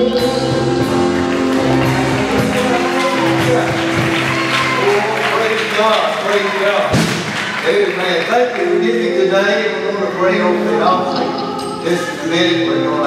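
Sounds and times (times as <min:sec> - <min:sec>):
person singing: 0:00.0 - 0:05.3, 0:09.4 - 0:13.0
electric guitar: 0:00.0 - 0:05.4
church band playing: 0:00.0 - 0:13.0
keyboard: 0:00.0 - 0:13.0
hand clapping: 0:00.9 - 0:09.2.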